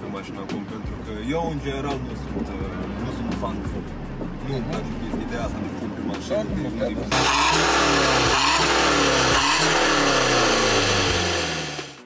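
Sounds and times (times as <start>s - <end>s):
diesel engine revving: 6.9s - 12.0s.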